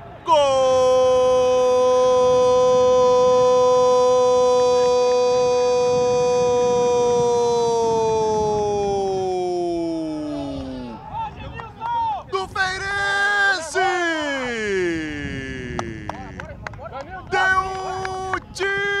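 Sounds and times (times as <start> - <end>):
commentator shouting goal: 0.3 - 11.0, 12.0 - 16.5, 17.2 - 19.0.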